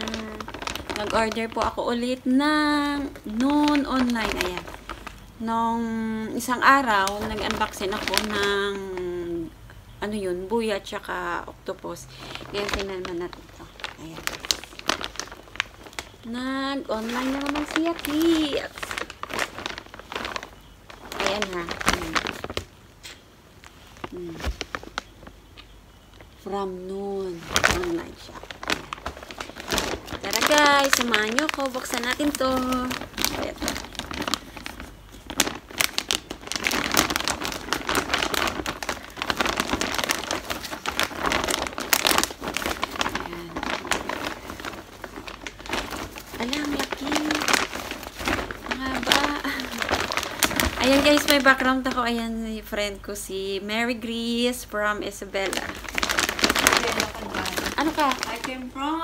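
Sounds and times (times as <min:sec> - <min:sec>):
plastic bag crinkling: 0:00.0 - 0:59.0.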